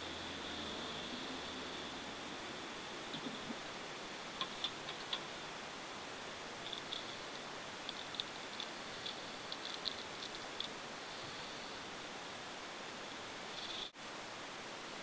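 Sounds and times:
microphone hiss: 0.0 - 15.0.

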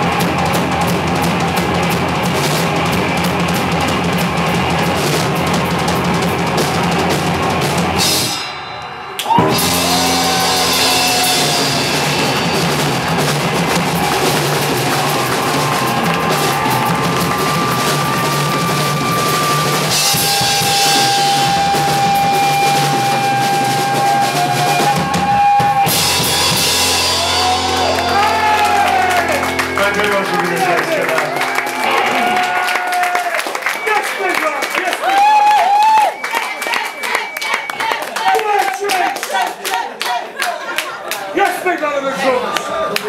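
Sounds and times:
drum kit and cymbals: 0.0 - 33.2
rock band playing live: 0.0 - 35.2
high held note: 8.0 - 24.5, 25.9 - 33.1
audience clapping: 9.2 - 20.4, 21.0 - 43.0.

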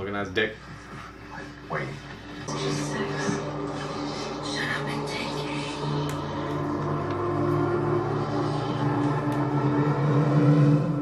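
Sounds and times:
low steady soundtrack drone: 1.7 - 11.0.

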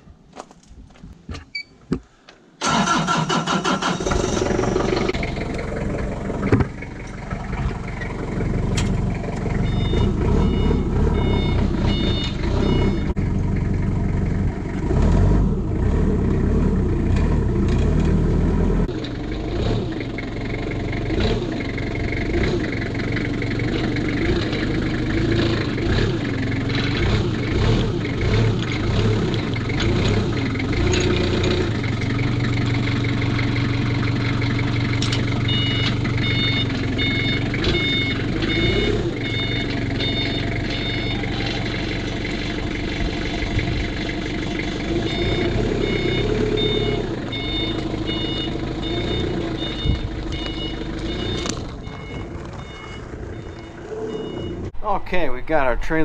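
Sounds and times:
forklift engine revving: 2.6 - 54.8
reversing alarm beeps: 9.6 - 13.2, 35.5 - 41.7, 45.0 - 54.7.

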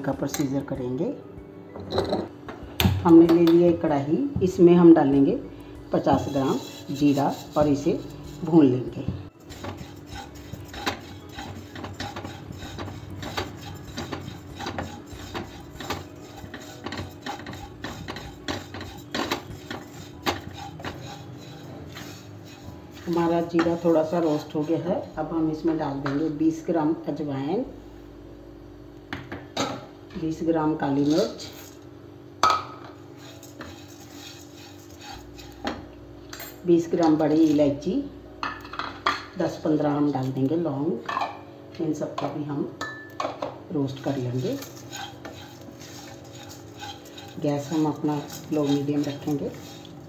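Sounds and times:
low steady hum: 0.0 - 50.0
wooden spatula scraping pan: 5.9 - 25.1, 30.9 - 31.8, 33.1 - 35.9, 43.9 - 50.0.

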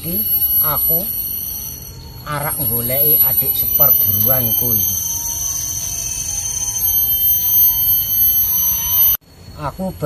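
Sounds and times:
high-pitched whine: 0.0 - 9.8.

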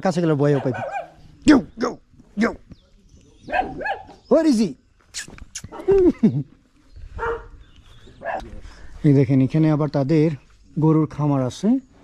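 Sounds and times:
dog barking: 0.5 - 1.2, 3.5 - 4.2, 7.2 - 7.6, 8.2 - 8.5.

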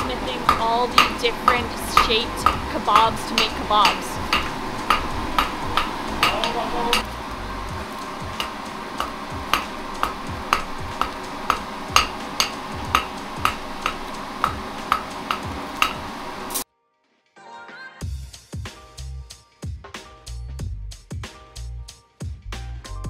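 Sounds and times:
hammer striking iron on an anvil: 0.0 - 7.1, 8.3 - 16.1.

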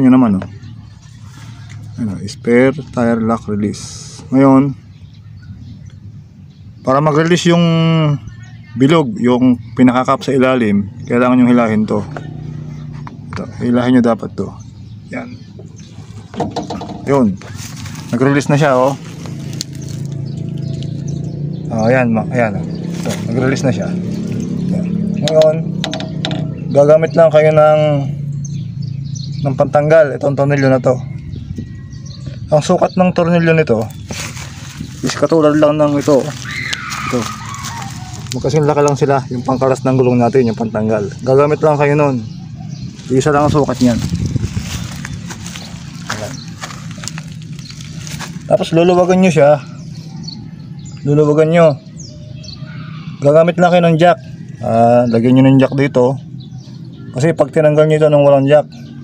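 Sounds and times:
footsteps on dry leaves: 0.8 - 2.0, 15.6 - 16.4, 17.0 - 21.6, 22.7 - 24.7, 33.7 - 50.6.

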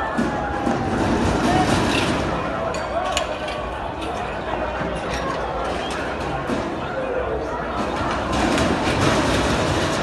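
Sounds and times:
crowd's loud voices: 0.0 - 10.0.

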